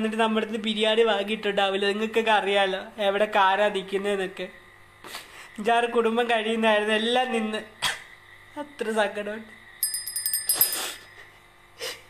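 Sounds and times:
high metallic rings: 0:09.8 - 0:11.3.

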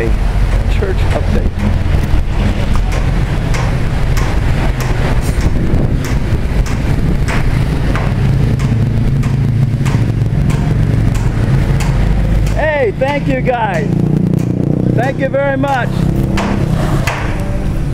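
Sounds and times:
low rumble: 0:00.0 - 0:17.9
man's voice: 0:12.5 - 0:13.9, 0:15.0 - 0:15.9.

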